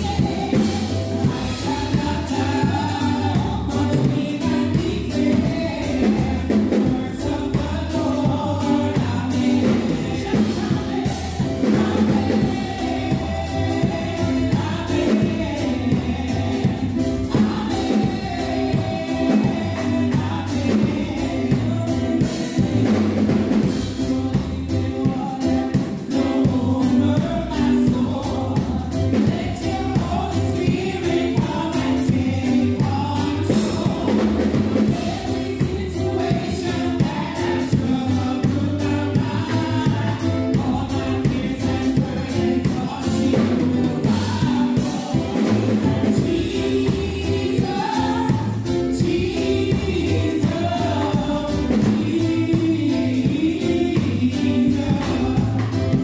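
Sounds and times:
amplified backing music: 0.0 - 56.0
bass line and steady beat: 0.0 - 56.0
women singing gospel song: 0.0 - 56.0.

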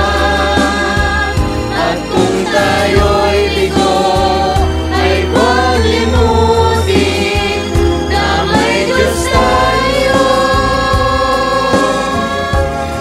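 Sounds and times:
choir singing in harmony: 0.0 - 13.0
low steady accompaniment: 0.0 - 13.0.

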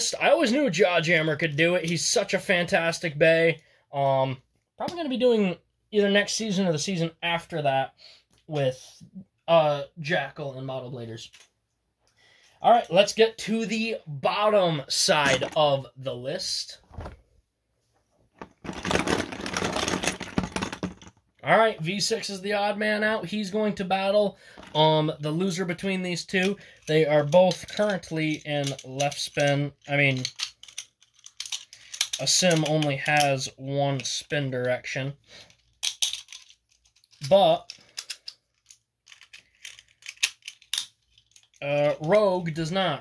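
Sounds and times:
person speaking: 0.0 - 11.4, 12.6 - 17.2, 21.4 - 30.3, 32.2 - 35.2, 37.2 - 37.8, 41.5 - 43.0
cloth rubbing on microphone: 16.8 - 17.3.

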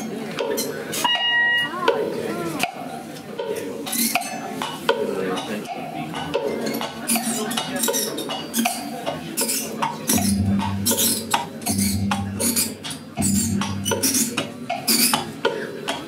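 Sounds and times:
low steady hum: 10.2 - 14.4.

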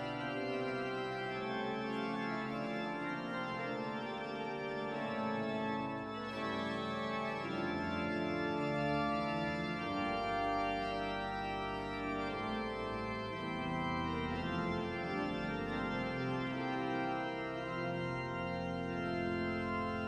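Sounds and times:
pipe organ chords: 0.0 - 20.0.

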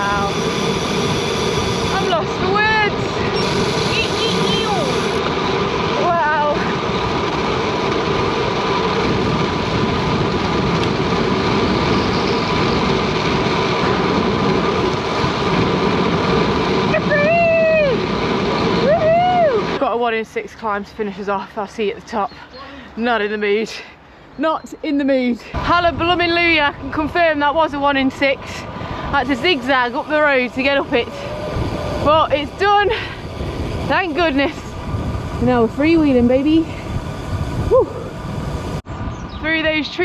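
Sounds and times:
wind noise on microphone: 0.0 - 21.4, 24.4 - 40.0
person whooping: 17.0 - 18.0, 18.8 - 19.7, 37.7 - 38.2.

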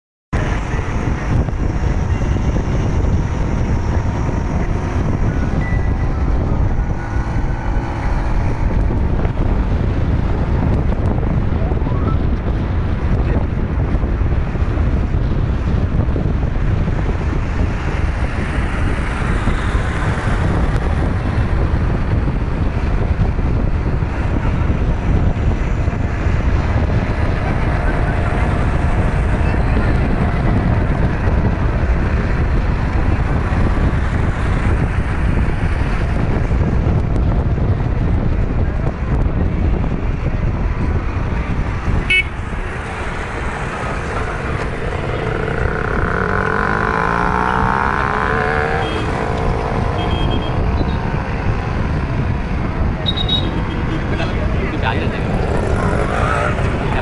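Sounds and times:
car road and wind noise: 0.3 - 57.0
vehicle horn: 42.0 - 42.4, 47.3 - 50.9, 53.0 - 53.6.

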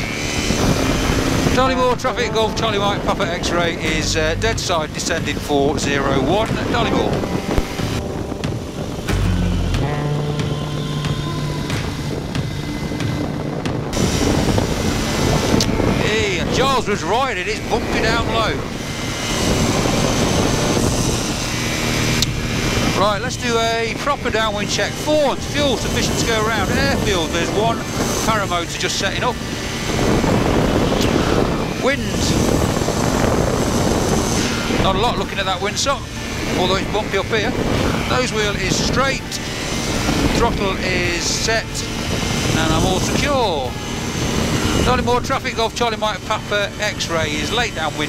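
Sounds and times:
low steady hum: 0.0 - 28.7
microlight engine and propeller: 0.0 - 48.0
wind noise on microphone: 0.0 - 48.0.

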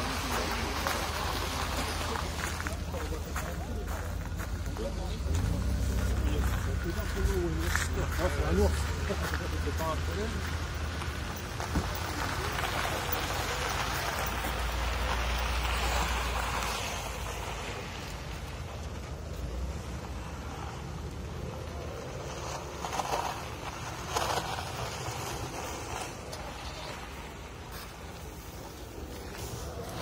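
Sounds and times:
car engine rumbling: 0.0 - 30.0
tyres rolling over gravel: 0.0 - 30.0.

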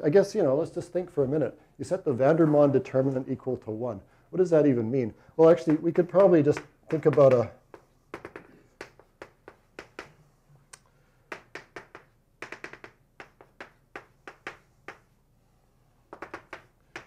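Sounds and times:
chalk tapping on blackboard: 5.6 - 10.2, 11.3 - 15.2, 16.0 - 17.0.

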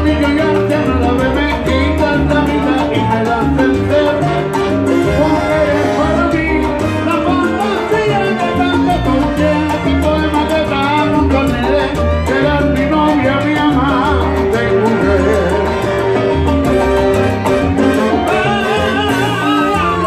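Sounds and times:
congas and timbales rhythm: 0.0 - 20.0
salsa band playing: 0.0 - 20.0.

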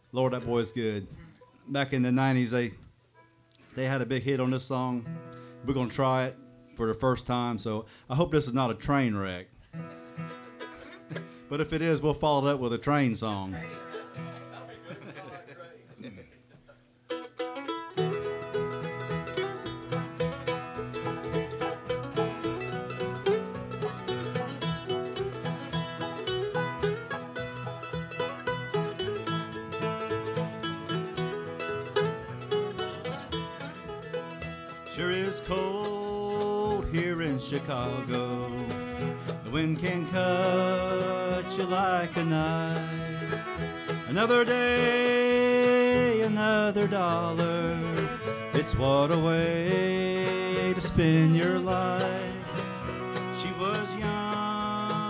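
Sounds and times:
bluegrass band playing: 9.7 - 15.4, 16.5 - 55.0
lead vocal singing: 39.5 - 43.3.

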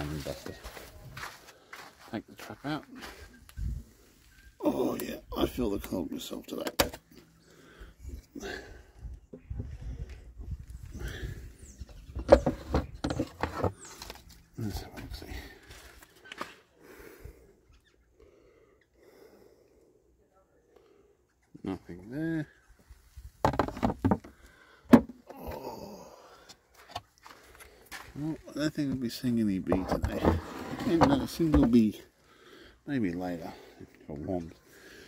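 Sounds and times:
wind rumble on microphone: 9.0 - 13.0
plastic tray handling noises: 12.1 - 14.4, 23.4 - 24.3, 29.7 - 31.8
plastic tray knocking and clattering: 23.4 - 24.3.

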